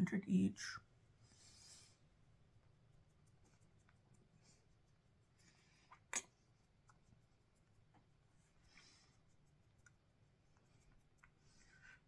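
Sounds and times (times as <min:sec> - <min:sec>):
makeup sponge rubbing skin: 0:01.0 - 0:12.0.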